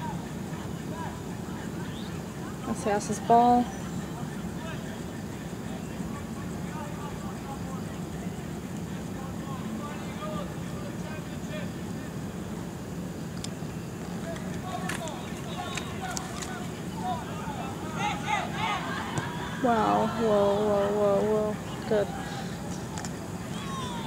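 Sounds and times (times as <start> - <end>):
distant spectator chatter: 0.0 - 24.0
players calling: 0.0 - 24.0
steady outdoor hum: 0.0 - 24.0.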